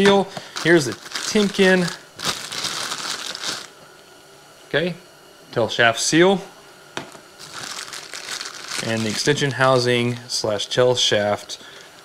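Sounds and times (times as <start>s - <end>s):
plastic bag crinkling: 0.0s - 3.8s, 7.4s - 10.6s.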